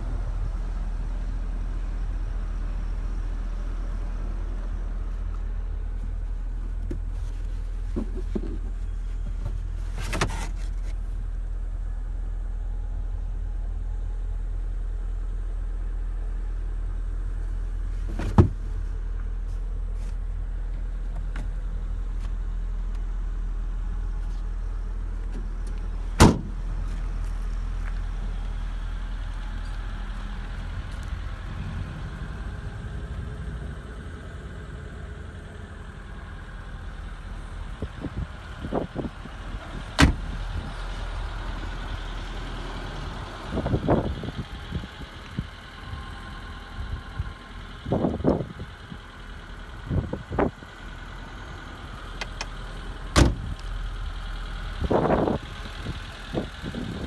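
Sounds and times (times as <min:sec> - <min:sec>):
car engine idling: 0:00.0 - 0:57.0
car panels and door clicks: 0:18.1 - 0:18.6, 0:26.2 - 0:26.6.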